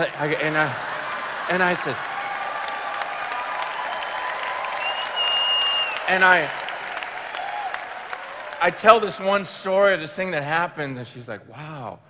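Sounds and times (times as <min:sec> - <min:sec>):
audience applauding: 0:00.0 - 0:09.2
high held whistle: 0:04.8 - 0:06.0.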